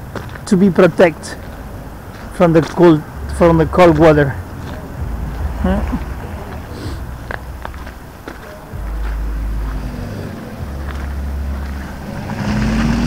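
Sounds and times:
light footsteps: 0:00.0 - 0:12.1
outdoor street background: 0:00.0 - 0:13.0.

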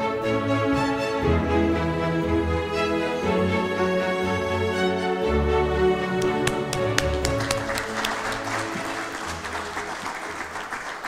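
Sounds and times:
instrumental music: 0:00.0 - 0:11.0
audience applause: 0:06.2 - 0:11.0.

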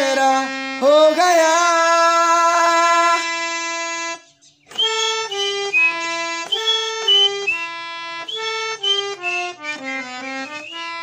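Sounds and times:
harmonium notes: 0:00.0 - 0:11.0.

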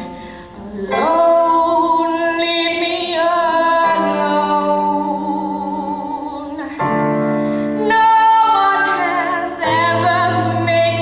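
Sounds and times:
woman singing with vibrato: 0:00.0 - 0:07.0, 0:07.7 - 0:11.0.

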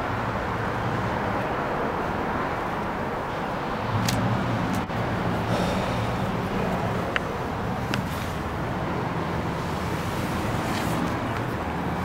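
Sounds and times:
motor vehicle rumble: 0:00.0 - 0:12.0.

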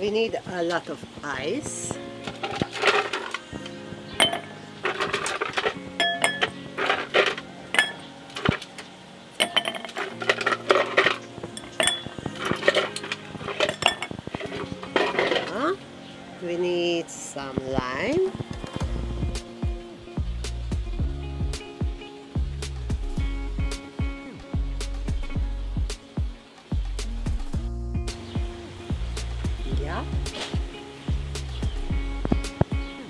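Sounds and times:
background music with steady beat: 0:00.0 - 0:33.0
ice cubes clinking in glasses: 0:04.2 - 0:08.7, 0:09.4 - 0:15.6.

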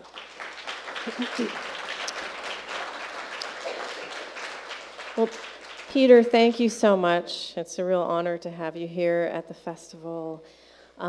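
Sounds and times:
voices over clapping: 0:00.0 - 0:06.0
audience applauding: 0:00.0 - 0:06.2.

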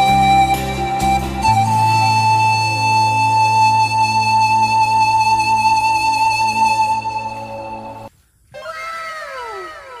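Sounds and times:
background music: 0:00.0 - 0:08.1.

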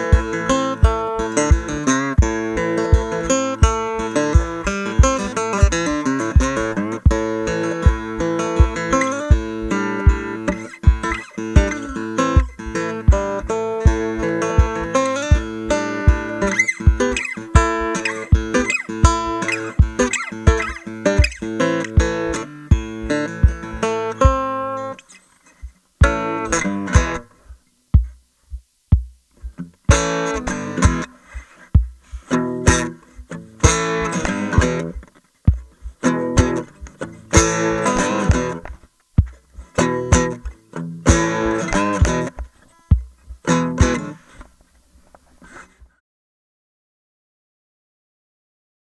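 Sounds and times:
stomp box bass thumps: 0:00.0 - 0:24.4, 0:25.6 - 0:30.2, 0:30.8 - 0:31.1, 0:31.7 - 0:44.1
strummed acoustic guitar: 0:00.0 - 0:28.2, 0:29.0 - 0:46.0.

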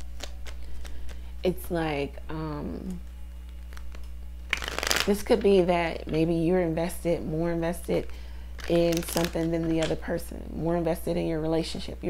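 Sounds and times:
cards being shuffled: 0:00.0 - 0:01.3, 0:03.4 - 0:06.2, 0:08.6 - 0:10.0
low electrical hum: 0:00.0 - 0:12.0.

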